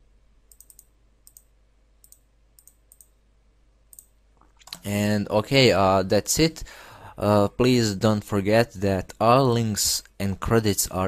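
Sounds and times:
computer mouse clicks: 0:00.5 - 0:03.2, 0:03.9 - 0:04.9
man speaking: 0:04.8 - 0:11.0.

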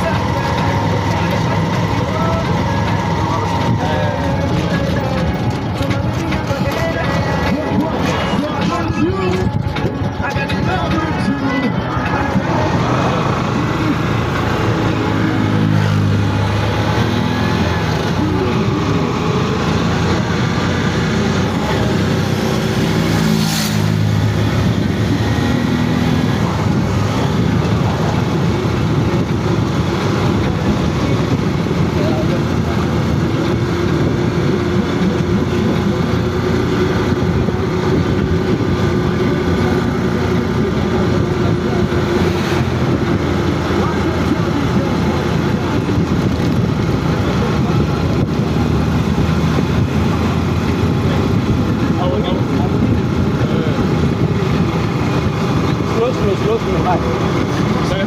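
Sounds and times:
vehicle engine and road noise: 0:00.0 - 0:58.0.

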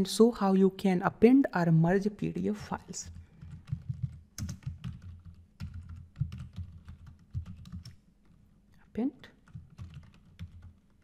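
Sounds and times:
computer keyboard typing: 0:02.7 - 0:08.0, 0:09.4 - 0:11.0.

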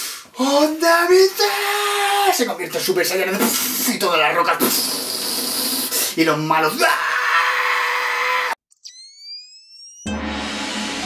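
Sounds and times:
man making hissing blast sound: 0:04.6 - 0:06.2
rising electronic tone: 0:08.7 - 0:11.0.

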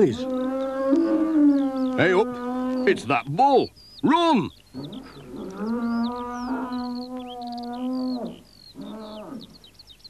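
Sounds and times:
bull bellowing: 0:00.0 - 0:03.1, 0:04.8 - 0:09.5.

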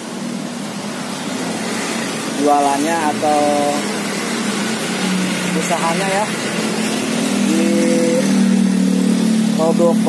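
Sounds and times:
road noise: 0:00.0 - 0:10.0
truck engine passing: 0:00.2 - 0:10.0.

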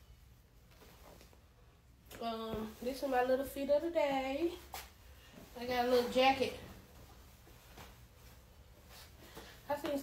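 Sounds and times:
woman talking: 0:02.2 - 0:04.8, 0:05.5 - 0:06.8, 0:09.6 - 0:10.0.

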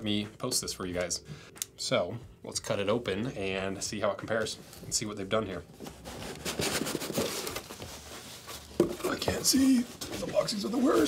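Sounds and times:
cardboard scraping and rustling: 0:05.8 - 0:11.0.

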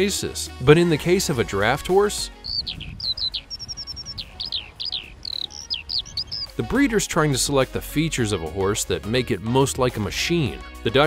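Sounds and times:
bird chirping: 0:02.1 - 0:06.7.

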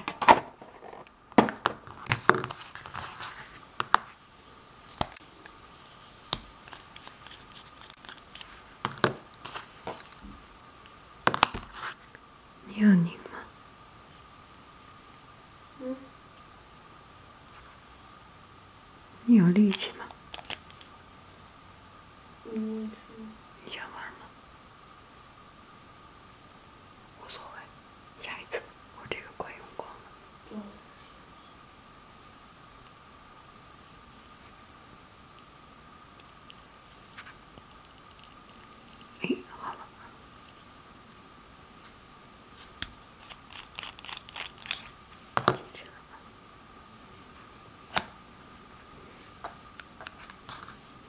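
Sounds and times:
faint high hum: 0:00.0 - 0:51.0
faint steady whine: 0:00.0 - 0:51.0
faint whisper-like sound: 0:11.7 - 0:13.6, 0:22.4 - 0:24.4, 0:27.1 - 0:32.5, 0:38.0 - 0:40.9, 0:45.6 - 0:47.6
pen threads clicking: 0:42.8 - 0:44.9.

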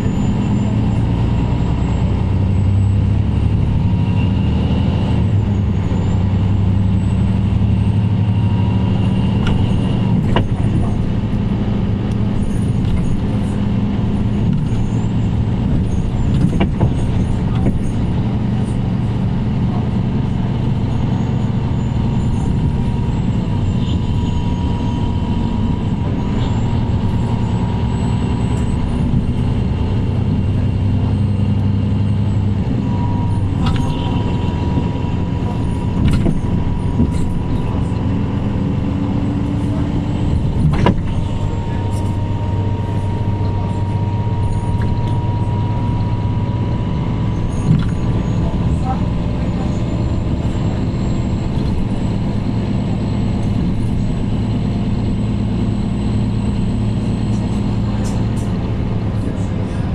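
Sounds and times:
bus diesel engine humming: 0:00.0 - 0:59.9
body rattles and knocks: 0:12.2 - 0:18.3.

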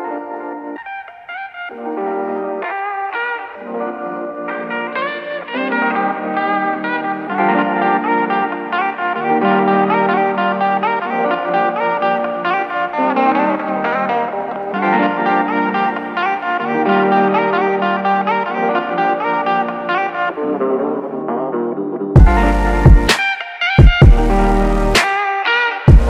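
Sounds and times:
electronic hip-hop instrumental: 0:00.0 - 0:26.0.

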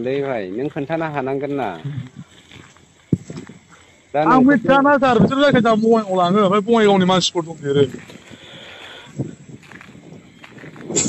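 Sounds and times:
faint phone line noise: 0:00.0 - 0:10.9.

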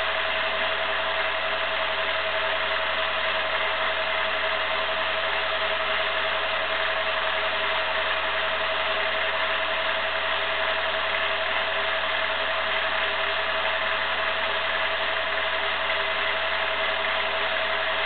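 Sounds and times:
film projector whirring: 0:00.0 - 0:18.0.

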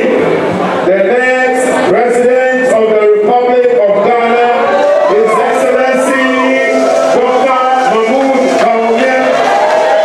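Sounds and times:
man chanting over public address: 0:00.0 - 0:09.5.

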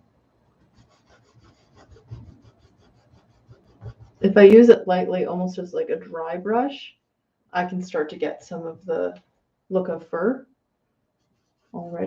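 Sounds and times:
paintbrush rubbing on canvas: 0:00.6 - 0:04.4, 0:11.2 - 0:12.0.

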